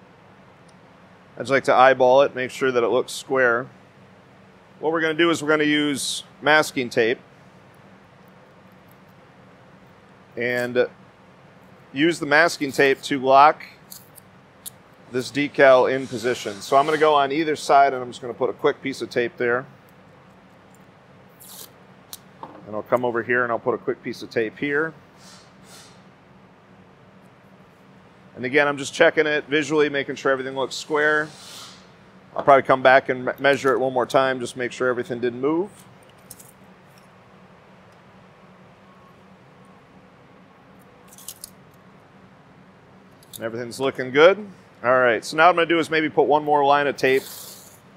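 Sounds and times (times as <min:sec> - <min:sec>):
low room hum: 0:00.0 - 0:47.9
masking tape ripping off roll: 0:21.4 - 0:21.7
tape measure metallic rattle: 0:41.1 - 0:41.5.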